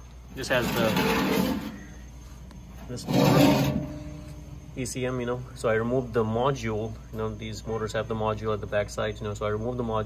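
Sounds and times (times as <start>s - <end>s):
faint low hum: 0.0s - 10.0s
rubbing handling noise: 0.4s - 4.4s.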